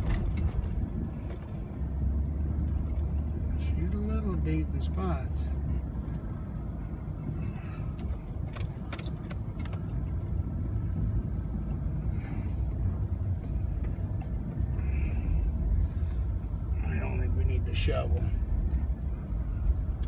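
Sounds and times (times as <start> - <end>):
truck engine and tyres rumbling: 0.0 - 20.0.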